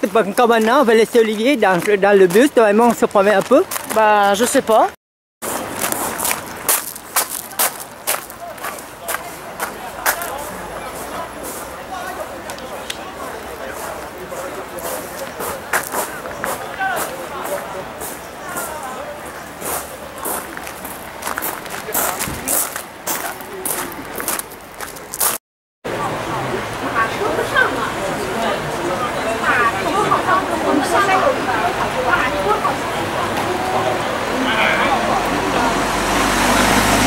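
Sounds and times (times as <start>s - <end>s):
people talking: 0.0s - 5.0s, 7.3s - 25.2s, 25.9s - 37.0s.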